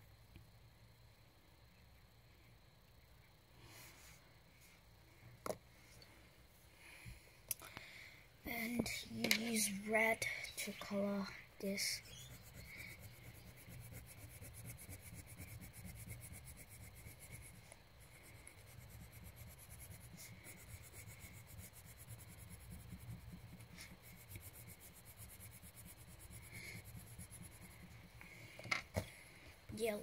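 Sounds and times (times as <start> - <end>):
colouring tool rubbing on paper: 11.7 - 28.4.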